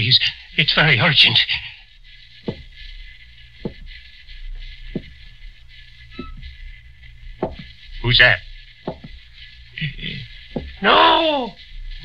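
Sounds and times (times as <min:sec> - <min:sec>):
recording hiss and hum: 0:00.0 - 0:12.0
slow footsteps: 0:01.9 - 0:12.0.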